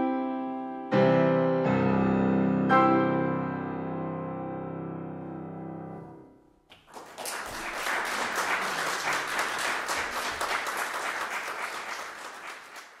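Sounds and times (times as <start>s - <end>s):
audience applauding: 6.7s - 13.0s.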